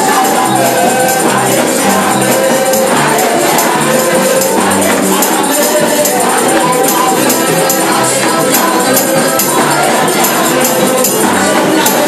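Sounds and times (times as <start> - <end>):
band with bass line: 0.0 - 12.0
shaken percussion: 0.0 - 12.0
women's choir singing: 0.0 - 12.0.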